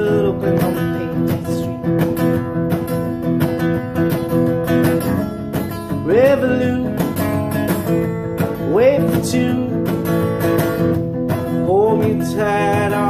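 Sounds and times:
acoustic guitar strumming: 0:00.0 - 0:13.0.

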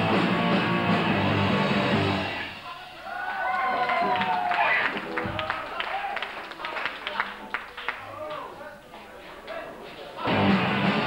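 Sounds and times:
bass guitar: 0:00.0 - 0:02.6, 0:10.2 - 0:11.0
electric guitars distorted: 0:00.0 - 0:02.6, 0:10.2 - 0:11.0
drums: 0:00.0 - 0:05.7, 0:09.2 - 0:11.0.

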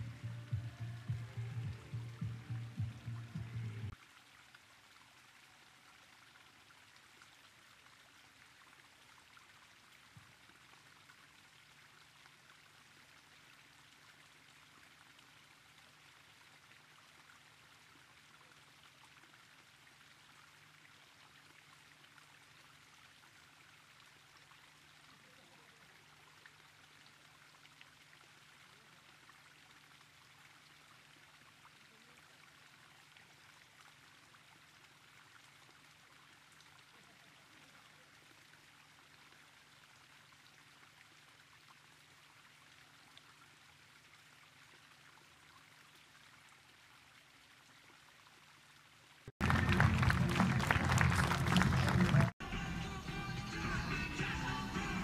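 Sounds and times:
low hum: 0:00.0 - 0:04.0
faint steady hiss: 0:00.0 - 0:49.3.

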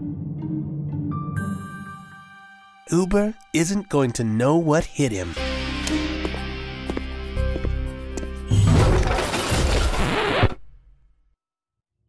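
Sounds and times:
rushing scratchy cartoon effect: 0:08.7 - 0:10.6.

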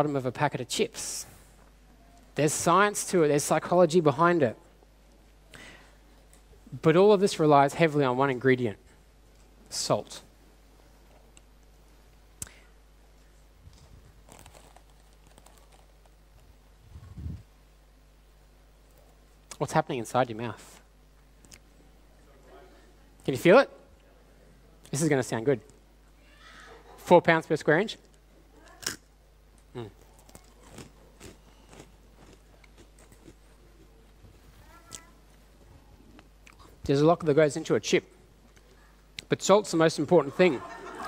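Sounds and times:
person chewing crunchy chip: 0:14.1 - 0:16.2, 0:29.8 - 0:34.0
foil packet crinkling: 0:14.1 - 0:16.4.

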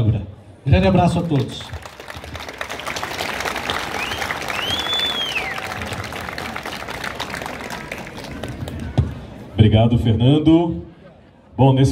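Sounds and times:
crowd applauding: 0:01.1 - 0:09.4
high whistle: 0:03.9 - 0:05.8.

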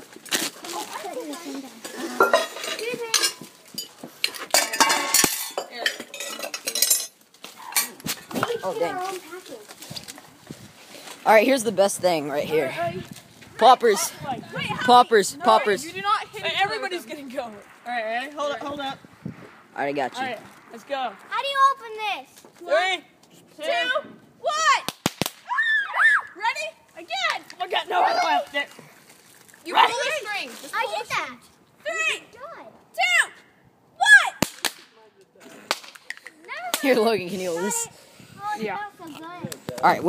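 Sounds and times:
excited shouting: 0:13.6 - 0:17.1, 0:23.6 - 0:24.9, 0:25.5 - 0:28.6, 0:29.7 - 0:33.4, 0:34.0 - 0:34.4
sharp pops: 0:24.8 - 0:25.5, 0:34.4 - 0:35.0, 0:35.6 - 0:37.0.

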